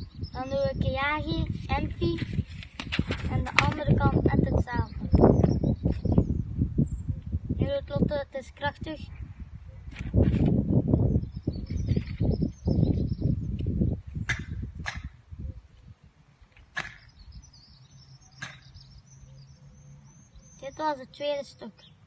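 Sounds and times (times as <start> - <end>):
wind rumbling on microphone: 0.0 - 20.9.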